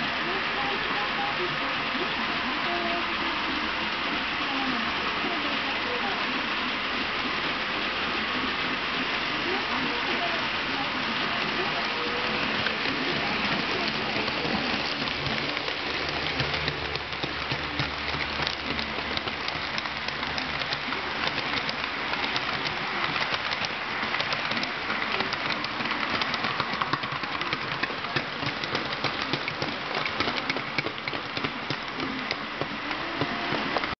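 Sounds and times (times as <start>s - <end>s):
model train wheels clattering: 11.4s - 33.9s.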